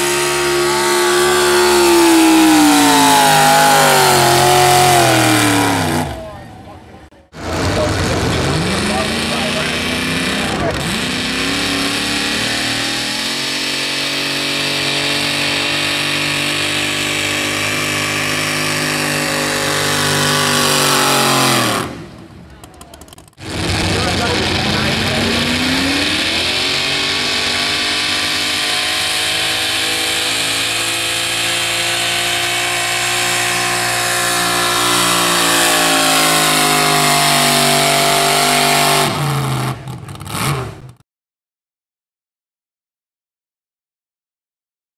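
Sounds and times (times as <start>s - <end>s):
pickup truck engine at high revs: 0.0s - 41.0s.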